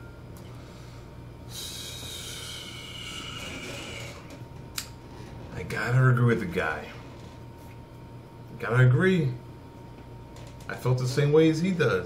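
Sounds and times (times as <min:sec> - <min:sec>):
man exhaling hissing breath: 0:00.6 - 0:04.4.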